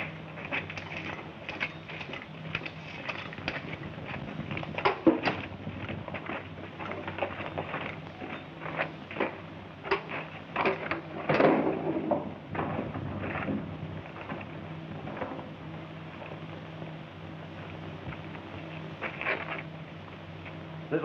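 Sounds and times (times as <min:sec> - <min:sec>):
steady soundtrack hum: 0:00.0 - 0:21.0.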